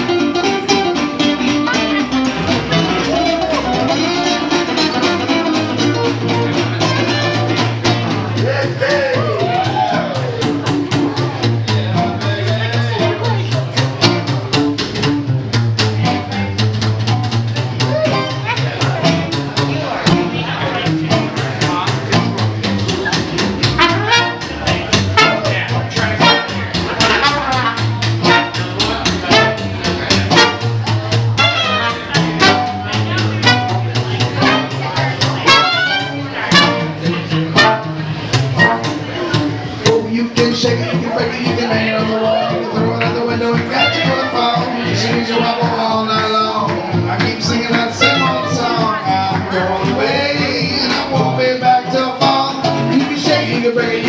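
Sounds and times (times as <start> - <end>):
double bass walking line: 0.0 - 54.0
strummed guitar: 0.0 - 54.0
trumpet: 23.6 - 39.1, 43.7 - 44.5, 47.9 - 48.8
trombone melody: 23.6 - 39.2, 43.7 - 44.4, 47.9 - 48.8.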